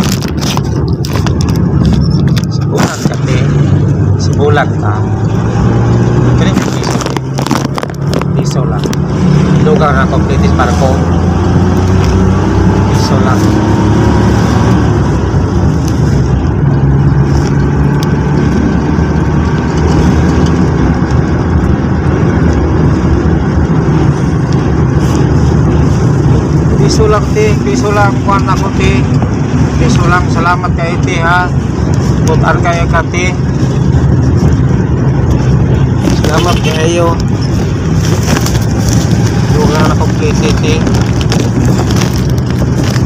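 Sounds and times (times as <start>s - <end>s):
vehicle engine and road noise: 0.0s - 43.0s.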